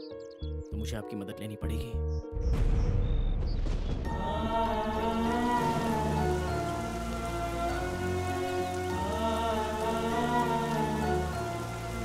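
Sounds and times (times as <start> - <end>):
slow film score: 1.7 - 12.0
heavy rain falling: 3.6 - 12.0.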